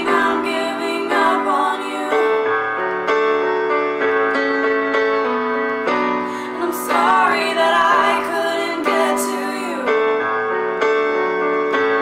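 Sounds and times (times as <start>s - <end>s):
keyboard piano chords: 0.0s - 12.0s.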